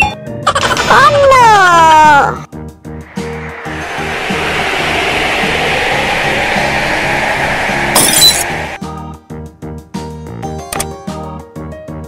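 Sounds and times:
rushing whoosh: 2.9s - 9.1s.

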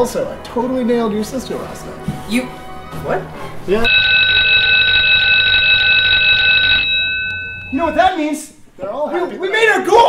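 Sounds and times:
rapidly trilling bell ringing: 3.9s - 8.3s.

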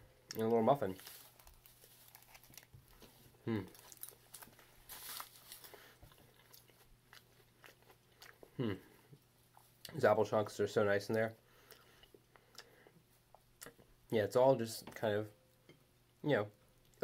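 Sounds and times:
aluminium foil rustling: 0.4s - 6.0s
person chewing: 1.2s - 9.9s
person humming hmm: 3.4s - 3.8s, 8.5s - 9.0s.

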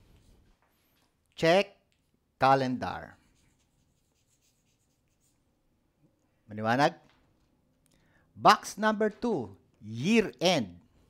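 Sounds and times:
chalk scratching on chalkboard: 3.2s - 5.5s.

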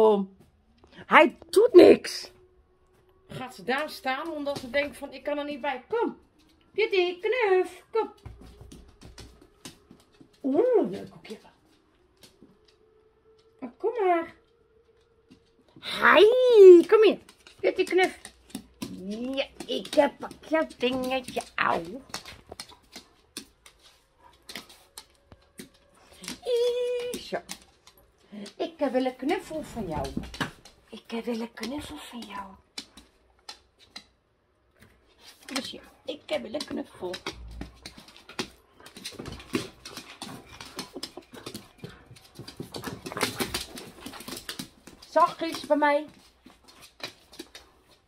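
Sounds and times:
dog claws clicking on hard floor: 16.7s - 48.0s
scuffling and clicking: 34.8s - 48.0s
small dog excited noises: 35.2s - 48.0s.

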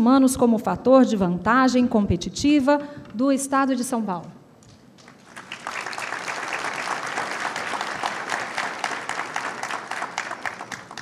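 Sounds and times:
large audience applauding: 5.0s - 11.0s.

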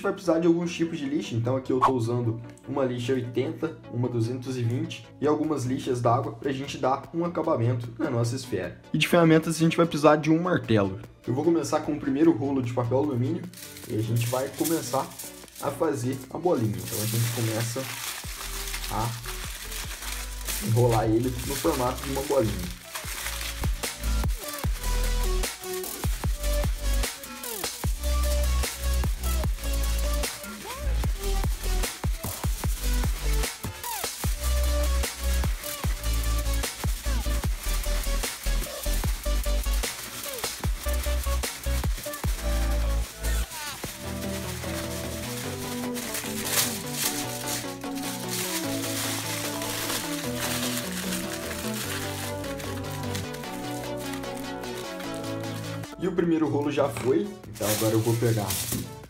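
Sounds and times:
music with beat and heavy bass: 22.7s - 48.6s.

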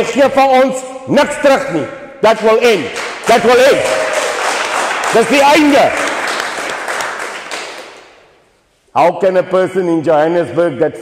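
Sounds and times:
audience applause: 3.0s - 8.0s.

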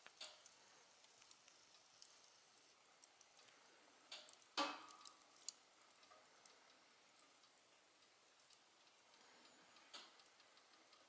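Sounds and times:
embers crackling: 0.0s - 11.0s.

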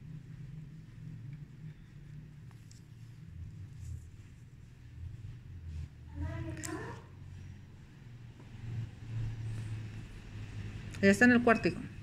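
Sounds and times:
passing vehicle rumble: 0.0s - 12.0s.

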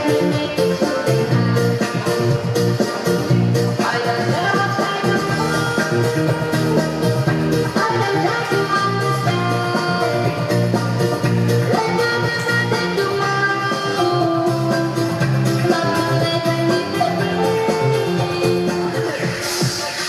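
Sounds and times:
dance music with steady beat: 0.0s - 20.0s.

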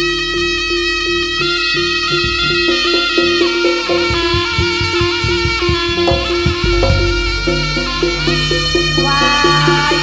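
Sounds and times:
reed pipe long note: 0.0s - 10.0s
pitched gong strikes: 2.3s - 10.0s.

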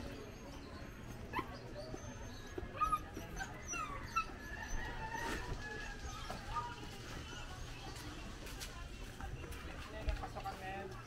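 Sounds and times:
dog whimpering and yipping: 0.0s - 6.8s.

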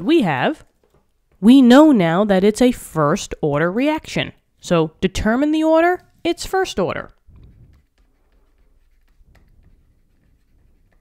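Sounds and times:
stylus scratching on tablet: 5.5s - 11.0s.

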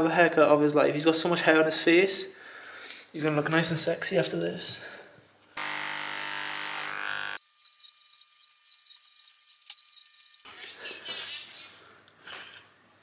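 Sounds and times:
hair clippers buzzing: 5.6s - 10.0s.

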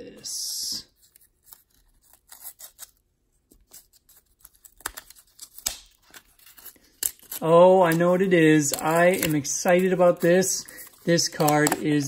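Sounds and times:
tape peeling: 1.0s - 10.2s
cardboard crinkles and clicks: 10.7s - 12.0s.

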